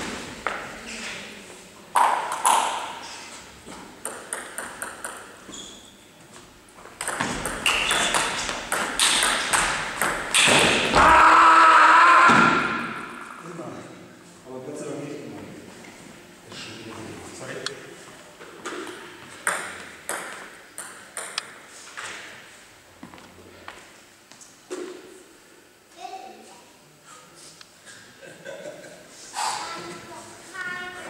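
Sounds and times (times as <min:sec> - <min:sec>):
loud shout: 0:10.9 - 0:13.4.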